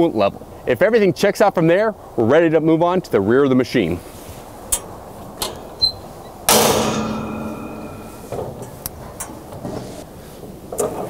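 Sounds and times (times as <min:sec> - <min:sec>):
light metallic clicks: 0:04.7 - 0:05.8
heavy steel door clanging shut: 0:05.4 - 0:10.0.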